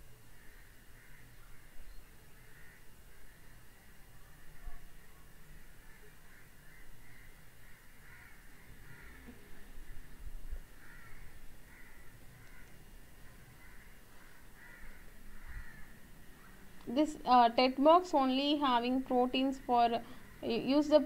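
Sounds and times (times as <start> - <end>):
faint bird calls: 0.3 - 16.8.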